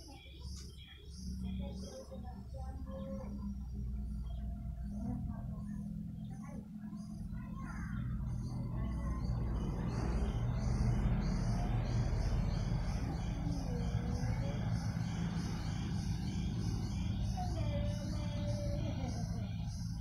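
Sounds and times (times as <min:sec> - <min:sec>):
faint distant voices: 0:00.0 - 0:20.0
insects chirping: 0:00.0 - 0:20.0
steady low rumble: 0:01.1 - 0:20.0.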